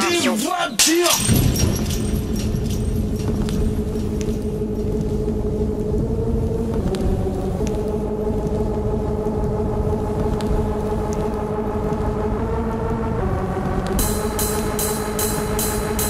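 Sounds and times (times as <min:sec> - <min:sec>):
dense low rumble: 0:01.2 - 0:14.8
droning synth tones: 0:01.4 - 0:16.0.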